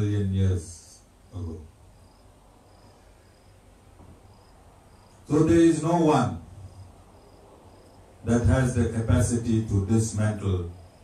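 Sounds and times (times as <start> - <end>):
insect chirping: 0.4 - 11.0.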